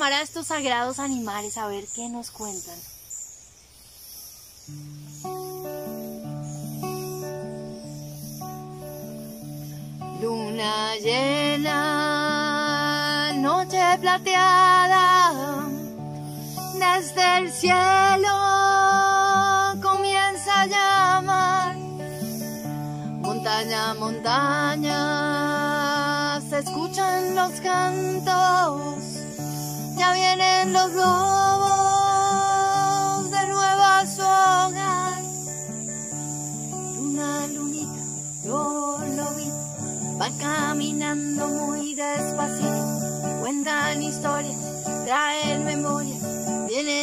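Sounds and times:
acoustic guitar plucked chords: 4.7 - 47.0
woman singing slow song: 9.8 - 47.0.

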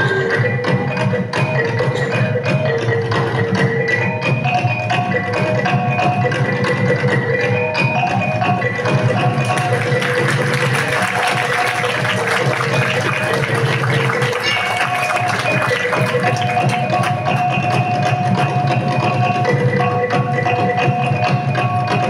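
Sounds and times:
drums and percussion beat: 0.0 - 22.0
gongs ringing: 9.4 - 17.8.

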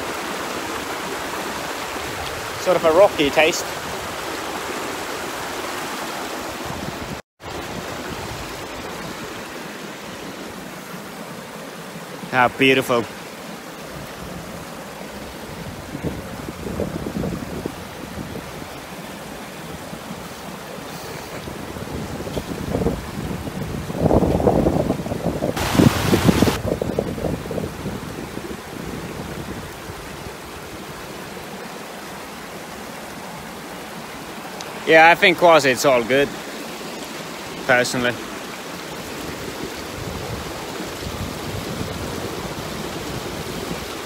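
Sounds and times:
stream rushing over rocks: 0.0 - 44.0.

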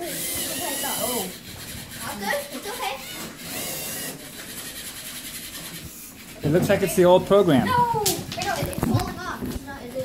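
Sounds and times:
toy robot electric motors: 0.0 - 8.7
faint children's voices: 0.0 - 10.0.

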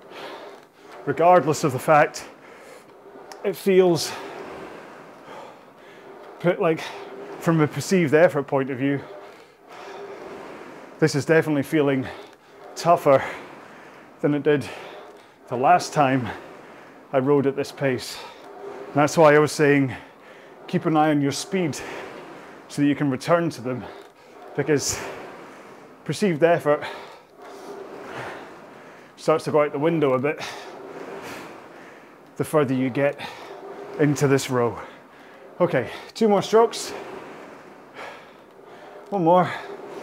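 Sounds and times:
rowing machine flywheel whirring: 0.0 - 40.0.

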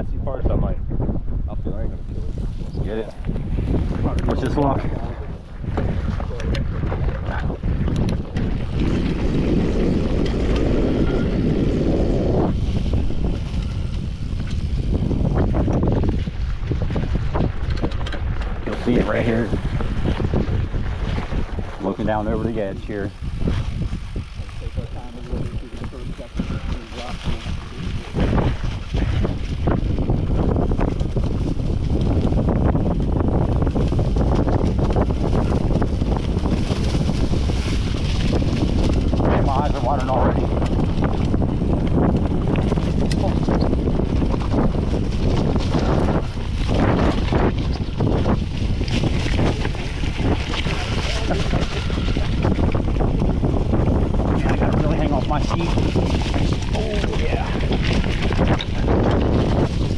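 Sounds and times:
bike tyres rumbling and rattling: 0.0 - 59.9
wind on microphone: 0.0 - 59.9.

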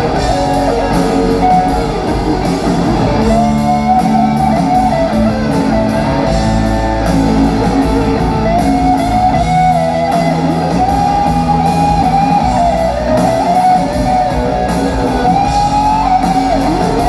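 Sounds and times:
bass guitar: 0.0 - 17.0
drums: 0.0 - 17.0
electric guitar lead: 0.0 - 17.0.

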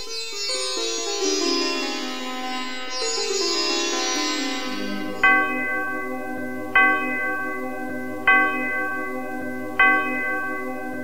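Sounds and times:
bell ringing: 4.2 - 11.0.

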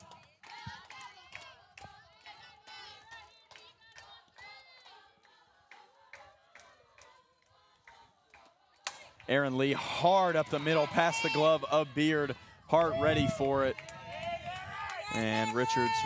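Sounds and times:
handclaps: 0.0 - 9.6, 13.2 - 16.0
distant high voices chanting and cheering: 0.0 - 16.0.

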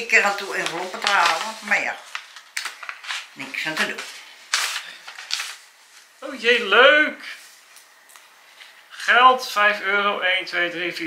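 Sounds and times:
paper envelope rustling: 0.0 - 6.2.

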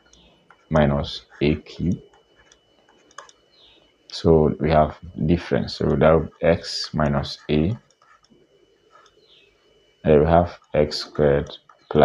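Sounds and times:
clicks writing on digital whiteboard: 0.0 - 3.8, 5.8 - 9.5, 10.3 - 12.0
low room hiss: 0.0 - 12.0.

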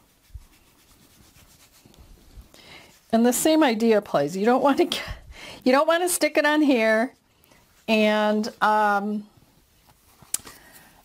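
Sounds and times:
wipe rubbing against skin: 0.0 - 4.6.

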